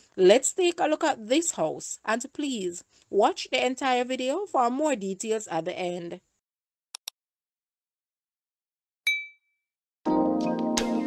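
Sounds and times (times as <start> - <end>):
notification bell ding: 9.1 - 9.5.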